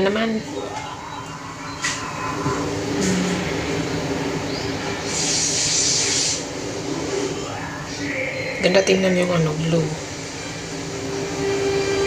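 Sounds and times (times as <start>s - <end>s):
hiss of spray: 5.1s - 6.5s.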